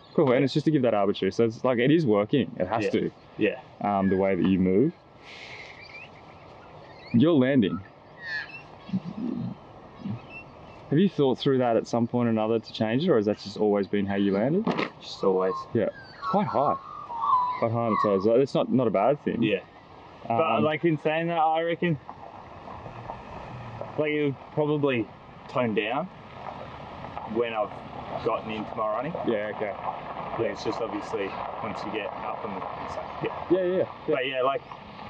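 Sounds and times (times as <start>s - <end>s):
bird chirping: 0.0s - 22.1s, 23.2s - 35.0s
wind on microphone: 8.7s - 10.9s.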